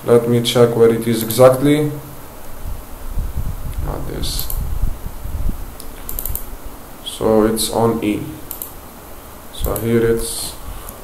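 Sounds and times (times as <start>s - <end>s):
steady low hum: 0.0s - 11.0s
computer mouse clicks: 1.2s - 1.4s, 4.4s - 4.6s, 5.8s - 6.5s, 8.5s - 8.8s, 9.6s - 9.9s.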